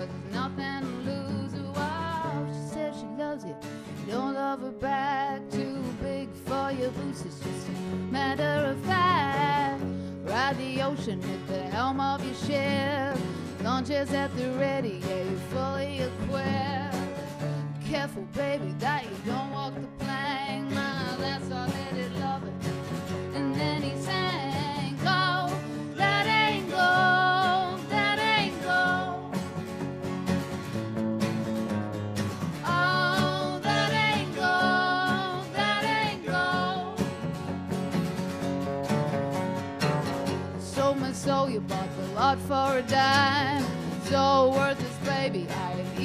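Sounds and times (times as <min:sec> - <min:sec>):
woman singing with vibrato: 0:00.0 - 0:22.6, 0:23.3 - 0:29.4, 0:32.6 - 0:37.2, 0:40.4 - 0:46.0
acoustic guitars: 0:00.0 - 0:46.0
electric guitar: 0:00.0 - 0:46.0.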